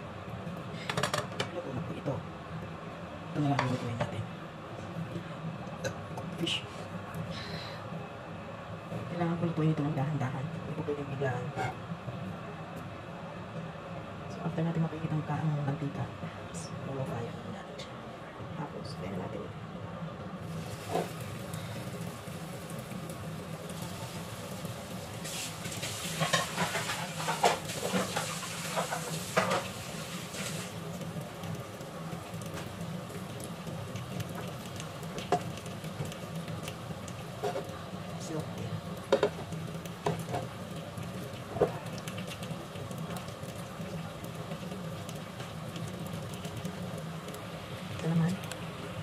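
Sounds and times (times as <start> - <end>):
fish frying in hot oil: 20.4 - 49.0
oil crackling and popping: 20.4 - 49.0.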